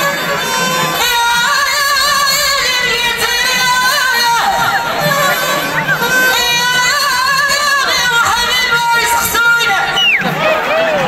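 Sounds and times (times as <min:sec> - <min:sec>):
amplified folk singing: 0:00.0 - 0:11.0.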